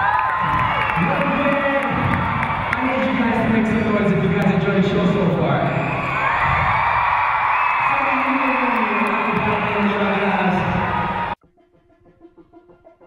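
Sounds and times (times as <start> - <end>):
crowd noise: 0.0 - 11.4
voice on a microphone: 7.8 - 11.0.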